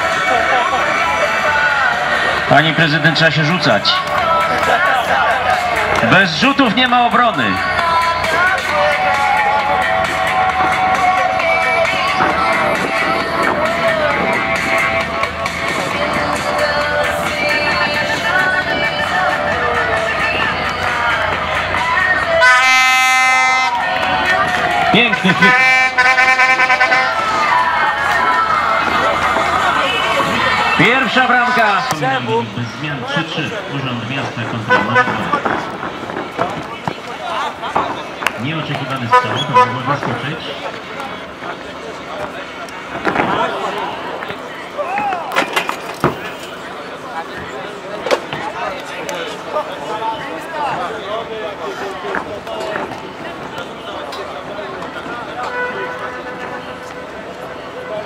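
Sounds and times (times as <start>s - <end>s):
background voices: 0.0s - 22.5s
voices calling out: 0.0s - 58.0s
loud horn-like note: 22.4s - 23.9s, 25.0s - 27.3s, 34.7s - 35.4s, 39.1s - 40.1s.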